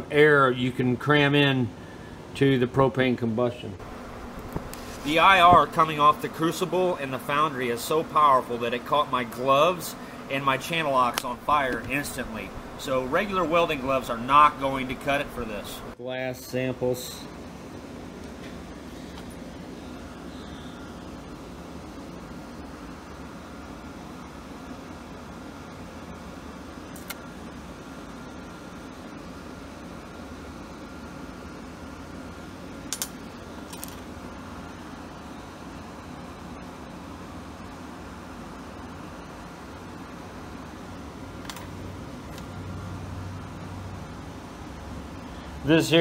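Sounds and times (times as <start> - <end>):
low mechanical hum: 0.0 - 46.0.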